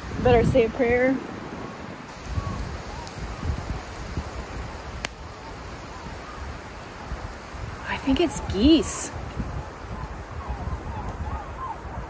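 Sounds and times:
wind rumbling on microphone: 0.0s - 12.0s
distant geese honking: 7.8s - 12.0s.

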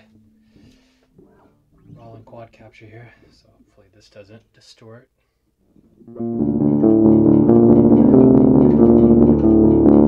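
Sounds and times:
filtered bass guitar note: 6.1s - 10.0s.

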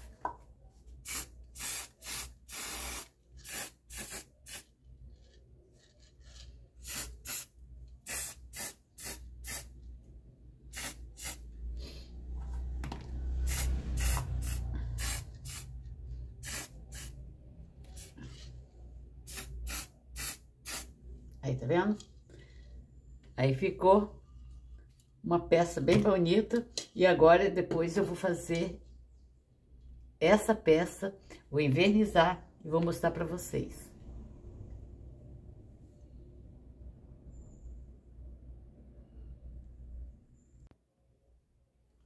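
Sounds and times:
spray-paint can hissing: 1.0s - 4.7s, 6.8s - 9.7s, 10.7s - 11.5s, 13.4s - 15.7s, 16.4s - 17.2s, 17.9s - 18.4s, 19.3s - 20.9s.

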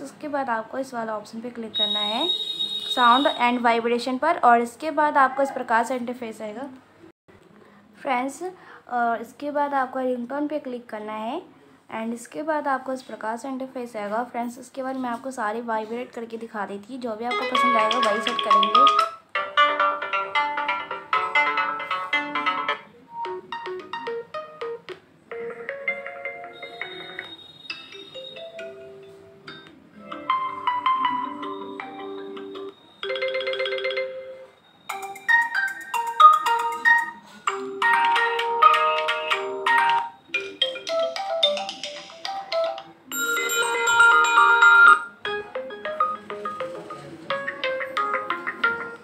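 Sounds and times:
phone ringtone melodies: 1.8s - 3.5s, 17.3s - 49.0s.

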